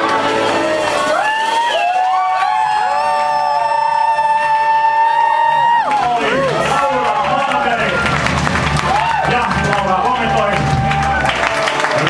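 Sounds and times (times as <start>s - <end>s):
crowd cheering: 0.0s - 12.0s.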